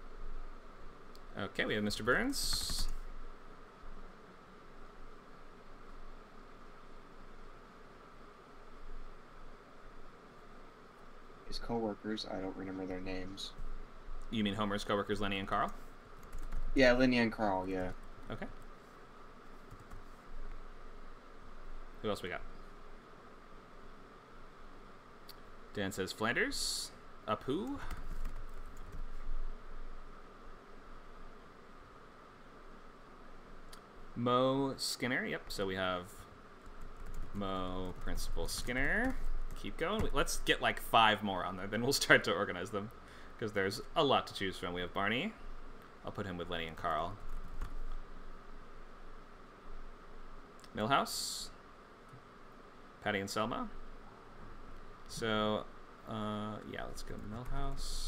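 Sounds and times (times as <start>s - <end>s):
faint microphone hiss: 0.0s - 58.0s.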